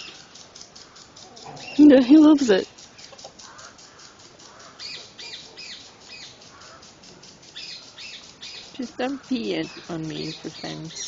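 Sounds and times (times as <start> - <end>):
marmoset chirping calls: 0.0 - 11.0.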